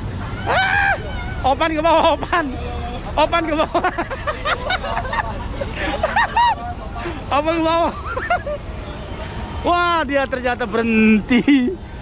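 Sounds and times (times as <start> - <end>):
people talking and calling out: 0.0 - 12.0
vehicle engine rumble: 0.0 - 12.0.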